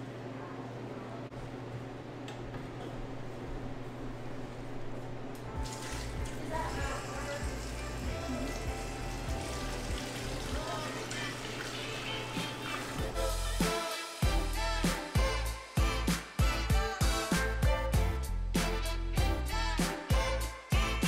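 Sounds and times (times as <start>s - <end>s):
background music: 5.5s - 21.0s
milk pouring into plastic tub: 5.6s - 6.4s.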